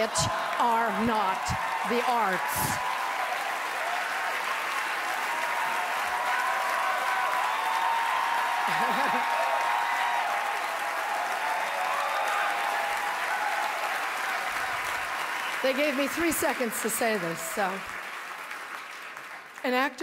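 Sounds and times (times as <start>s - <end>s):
audience applauding: 0.0s - 20.0s.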